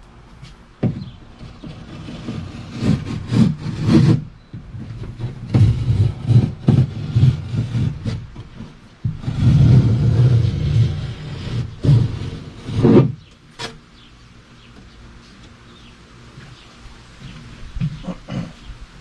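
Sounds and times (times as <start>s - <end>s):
knife cutting fiberglass cloth: 1.4s - 13.8s.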